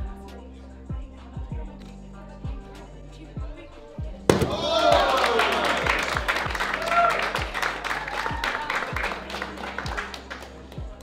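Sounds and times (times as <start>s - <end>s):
hip-hop music with kick drum: 0.0s - 11.0s
crowd cheering and shouting: 4.3s - 10.0s.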